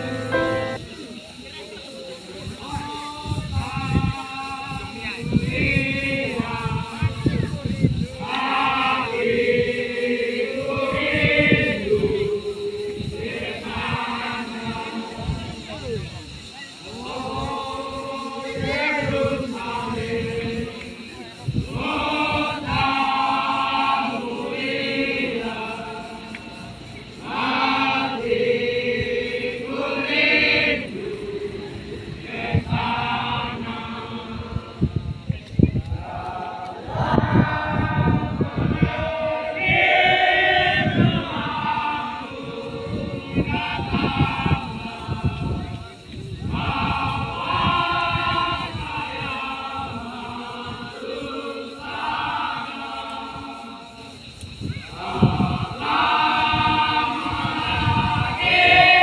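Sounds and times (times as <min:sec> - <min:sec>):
crowd chanting: 0:00.0 - 0:01.1, 0:02.2 - 0:35.3, 0:36.0 - 0:59.0.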